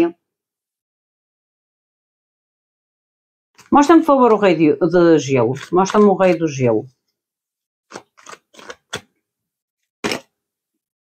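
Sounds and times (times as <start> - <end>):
card clicks and rustles: 7.9 - 9.1, 10.0 - 10.3
card snapping: 7.9 - 9.1, 10.0 - 10.3.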